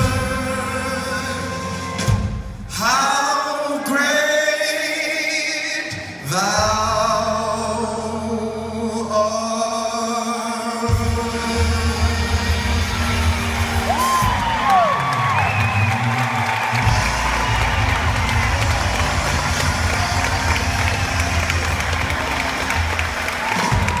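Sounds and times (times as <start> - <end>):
audience applauding and cheering: 11.9 - 24.0
whoops: 13.8 - 24.0.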